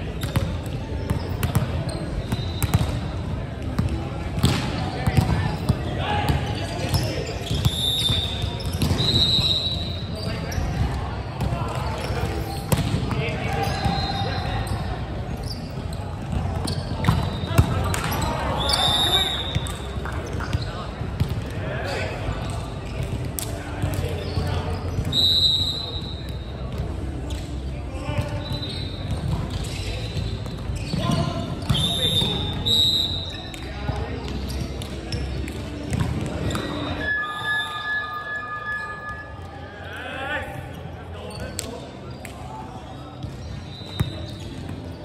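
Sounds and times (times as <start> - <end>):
shoes squeaking on hardwood court: 0.2 - 3.1, 6.5 - 10.8, 11.4 - 21.3, 23.9 - 25.2, 28.2 - 39.4, 43.1 - 45.0.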